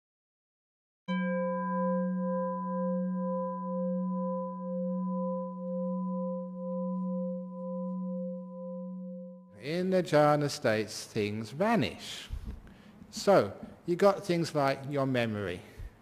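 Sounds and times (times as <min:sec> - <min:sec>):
singing bowl ringing: 0:01.1 - 0:09.6.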